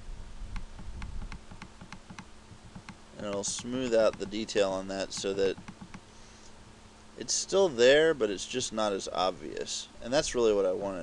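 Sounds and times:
computer mouse clicks: 0:00.6 - 0:04.4, 0:05.1 - 0:06.1.

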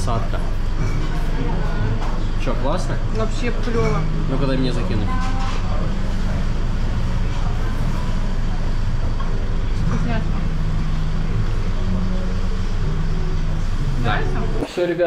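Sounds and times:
street traffic hum: 0:00.0 - 0:14.6.

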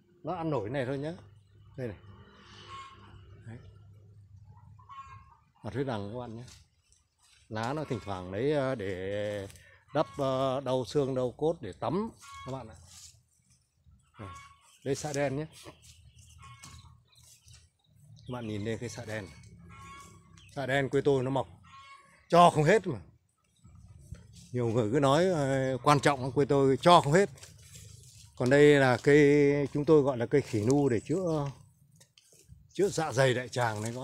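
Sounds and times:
faint bird chirps: 0:01.0 - 0:07.0, 0:11.9 - 0:27.1
faint rustle: 0:12.2 - 0:13.7, 0:27.3 - 0:29.1.

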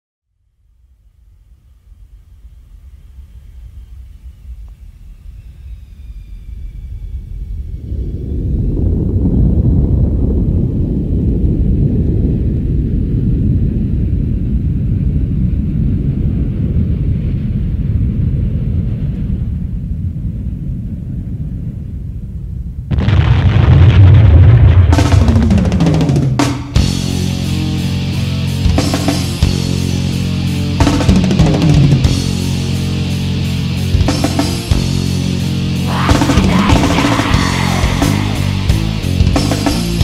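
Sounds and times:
faint high whistling tones: 0:01.4 - 0:09.0
deep rumbling: 0:01.8 - 0:40.0
metal band with drums: 0:24.9 - 0:40.0.

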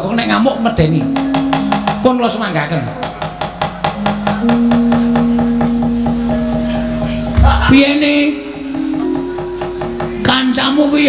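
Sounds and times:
gamelan tones: 0:00.0 - 0:11.0.

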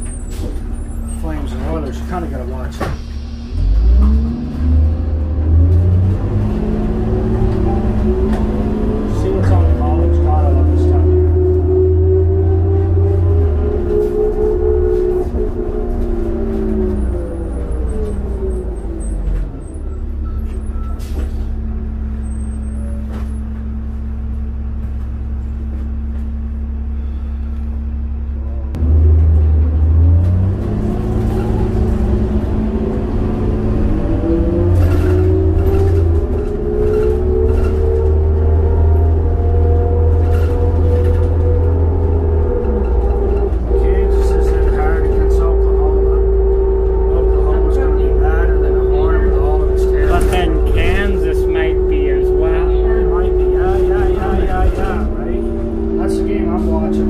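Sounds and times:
bus engine accelerating: 0:00.0 - 0:57.0.

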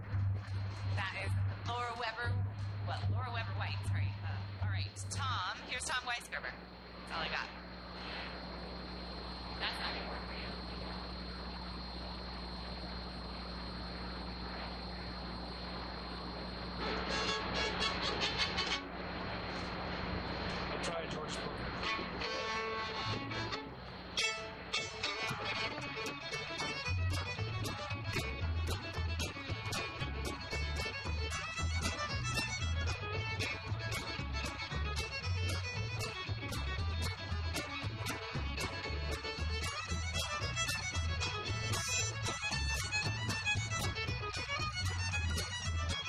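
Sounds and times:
walking upright bass: 0:00.0 - 0:05.5, 0:16.8 - 0:18.8, 0:20.3 - 0:46.0
fiddle tune: 0:16.8 - 0:18.9, 0:20.8 - 0:46.0
strummed acoustic guitars: 0:16.8 - 0:18.9, 0:20.5 - 0:46.0.

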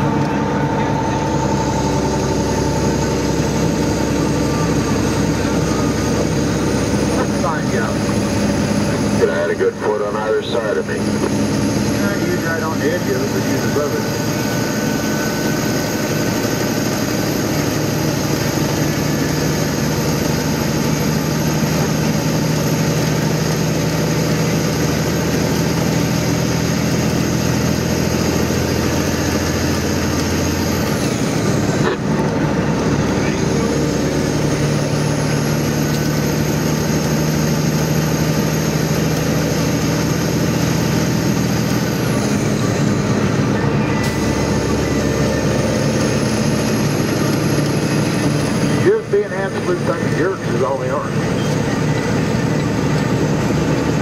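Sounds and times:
vehicle engine from inside cab: 0:00.0 - 0:54.0.

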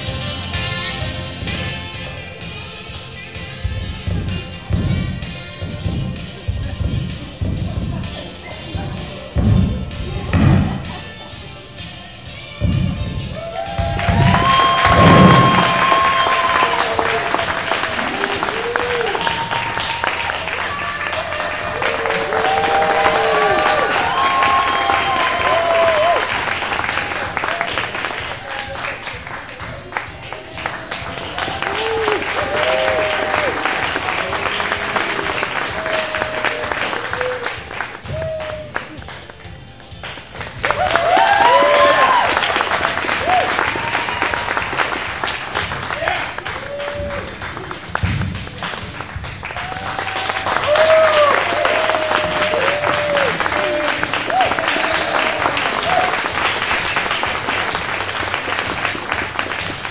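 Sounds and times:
crowd shouts and whoops: 0:13.3 - 0:28.8, 0:31.1 - 0:39.0, 0:40.6 - 0:44.9, 0:45.9 - 0:47.6, 0:49.4 - 0:56.4
audience applauding: 0:13.3 - 0:59.9.

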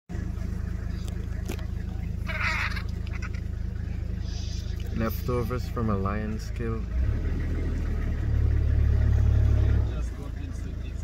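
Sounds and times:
vehicle engine idling: 0:00.1 - 0:11.0
harsh squawk: 0:02.2 - 0:03.5.

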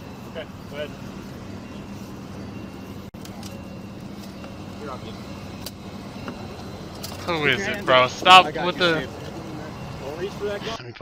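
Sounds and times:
low engine hum: 0:00.0 - 0:10.8
faint voices: 0:00.0 - 0:11.0.

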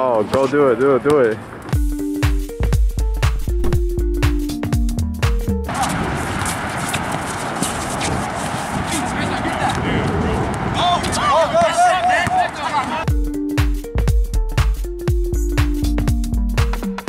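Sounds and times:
background music with beat: 0:01.8 - 0:05.7, 0:13.1 - 0:17.0
shoes squeaking on court: 0:05.7 - 0:12.9
basketball court noise: 0:05.7 - 0:13.1
players' voices: 0:05.7 - 0:13.1.

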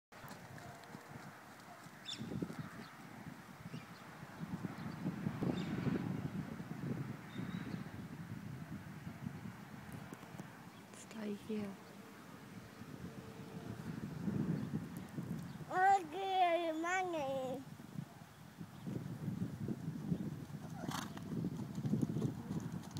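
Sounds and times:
pony hoofbeats trotting on sand: 0:00.1 - 0:03.1, 0:20.4 - 0:22.9
person speaking: 0:15.7 - 0:17.6.

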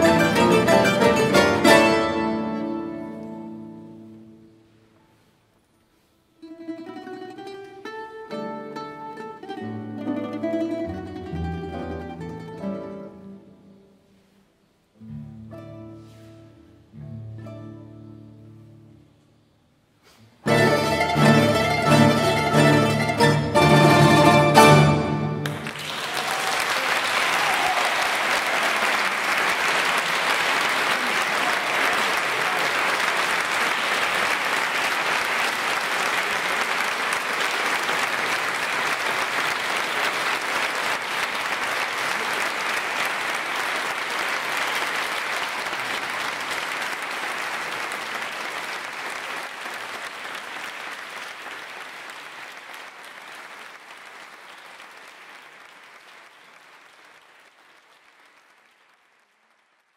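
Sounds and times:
audience applauding: 0:20.6 - 0:59.9.

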